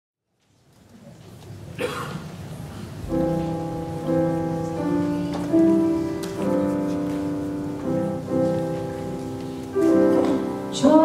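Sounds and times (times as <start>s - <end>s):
keyboard sustained chords: 3.0s - 11.0s.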